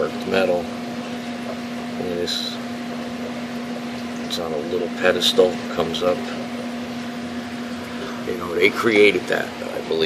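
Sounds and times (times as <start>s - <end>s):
steady hum: 0.0s - 10.0s.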